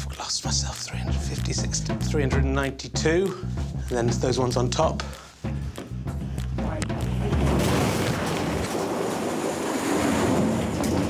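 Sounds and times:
plastic balls clattering on floor: 7.4 - 11.0.

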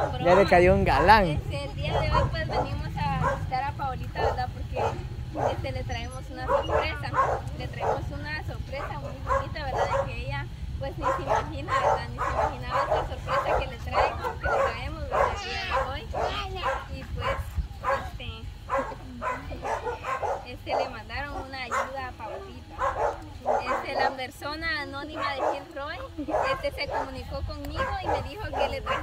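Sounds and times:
steady low rumble: 0.0 - 29.0
women talking: 0.0 - 29.0.

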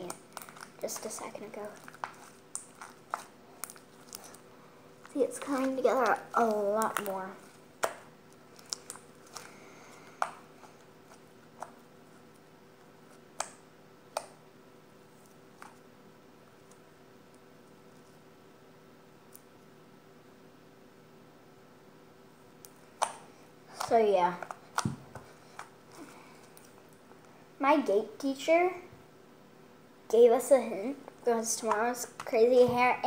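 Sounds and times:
slime squelching and clicking: 0.0 - 9.5
faint steady hum: 0.0 - 33.0.

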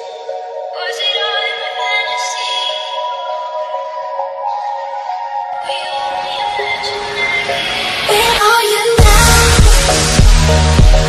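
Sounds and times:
electronic music with held synth notes: 0.0 - 11.0.

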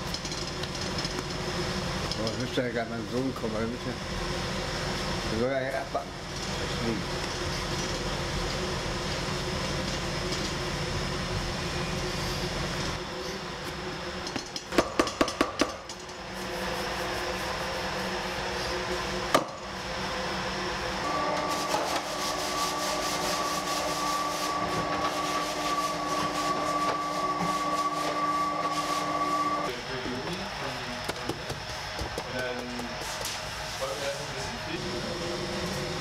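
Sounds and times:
room hum: 0.0 - 36.0.

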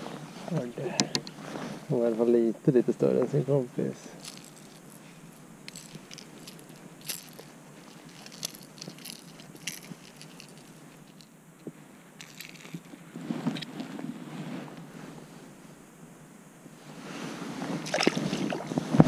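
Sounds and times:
rustling: 0.0 - 2.4, 3.1 - 15.9, 16.8 - 19.0
lure and hooks clicking: 5.7 - 11.3, 12.2 - 12.9.

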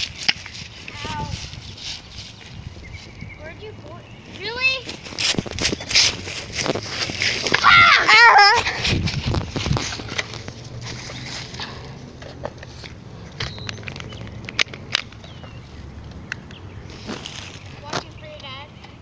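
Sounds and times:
dry leaves crunching underfoot: 0.0 - 3.3, 4.3 - 11.8, 16.8 - 18.1
loud wavering yell: 7.6 - 8.7.

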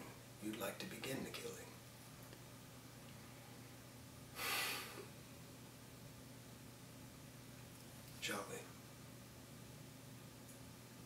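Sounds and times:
faint room hum: 0.0 - 11.0
man's sharp breath: 4.4 - 5.1.

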